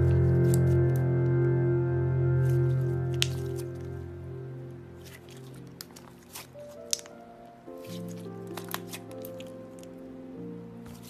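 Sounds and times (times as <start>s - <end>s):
background music with held notes: 0.0s - 11.0s
wet slime squelch: 2.4s - 3.9s, 5.0s - 10.0s.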